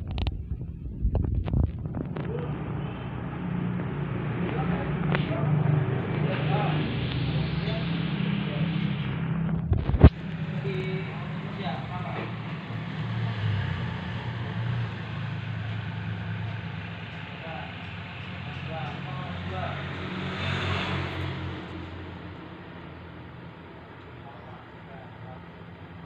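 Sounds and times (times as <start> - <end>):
vehicle engine rumbling: 0.0 - 26.0
faint voices: 1.9 - 20.6.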